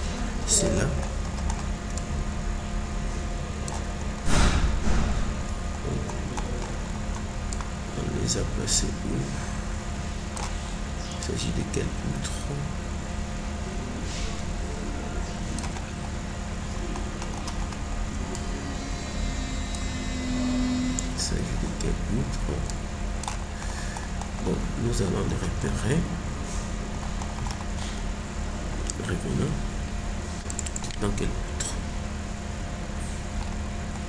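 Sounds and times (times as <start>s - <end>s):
low hum: 0.0s - 34.0s
low steady tone: 18.0s - 22.8s
computer mouse clicks: 30.4s - 31.0s.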